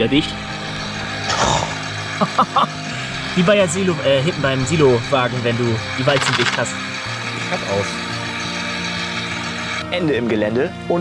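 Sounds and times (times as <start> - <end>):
steady low hum: 0.0 - 9.8.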